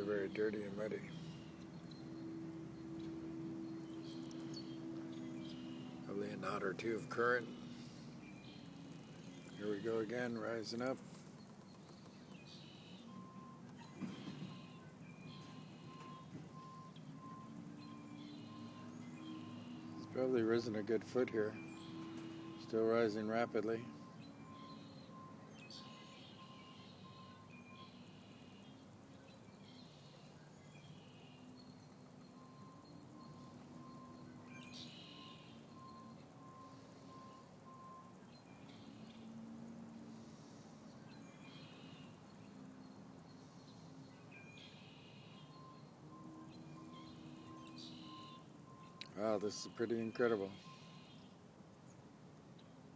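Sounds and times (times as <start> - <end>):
low hum: 0.0 - 9.6
thin electronic beeps: 0.0 - 30.0, 30.8 - 39.7, 41.2 - 51.2
faint bird chirps: 0.0 - 52.9
low steady hum: 0.0 - 52.9.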